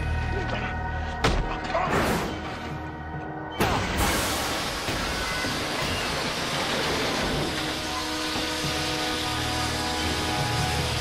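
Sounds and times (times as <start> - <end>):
dramatic orchestral score: 0.0 - 11.0
steam hissing: 3.8 - 11.0.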